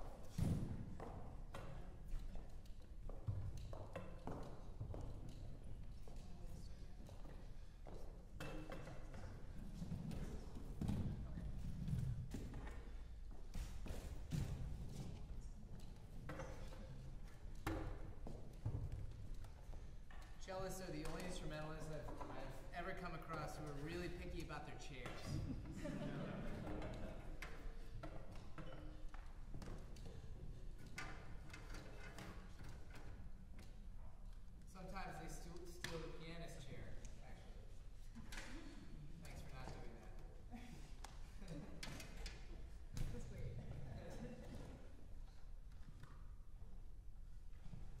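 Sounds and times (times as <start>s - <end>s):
footsteps on wooden stage: 0.0s - 23.5s.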